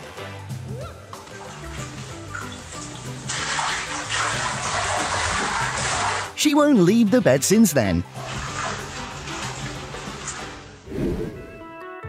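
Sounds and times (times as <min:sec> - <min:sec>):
background music: 0:00.0 - 0:12.0
water sloshing in waterbed: 0:01.4 - 0:06.4, 0:08.1 - 0:10.6.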